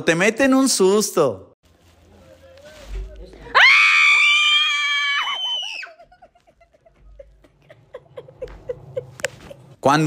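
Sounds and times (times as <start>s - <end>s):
girl screaming: 3.5s - 6.0s.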